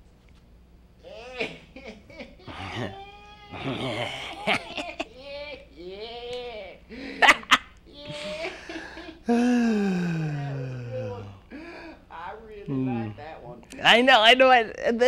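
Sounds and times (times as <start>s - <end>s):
long falling groan: 9.3s - 11.4s.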